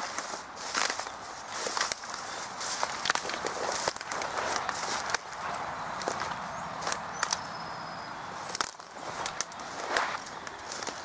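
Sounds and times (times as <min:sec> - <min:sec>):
footsteps crunching on dry grass: 0:00.0 - 0:11.0.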